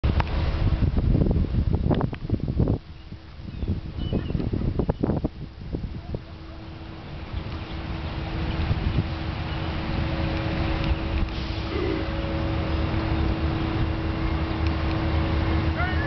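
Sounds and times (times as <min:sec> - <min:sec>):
wind buffeting microphone: 0:00.0 - 0:16.0
rushing floodwater: 0:02.4 - 0:16.0.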